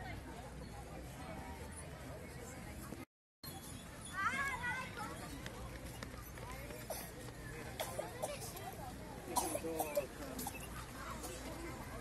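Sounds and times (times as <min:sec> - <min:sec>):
crowd voices talking: 0:00.0 - 0:12.0.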